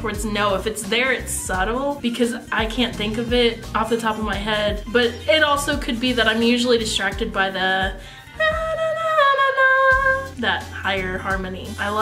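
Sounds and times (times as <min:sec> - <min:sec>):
woman singing high note: 0:08.4 - 0:10.3.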